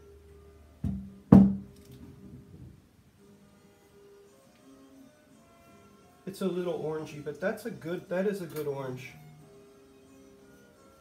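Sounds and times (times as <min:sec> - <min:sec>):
faint music with held notes: 0:00.0 - 0:11.0
hollow wooden knock: 0:00.8 - 0:02.8.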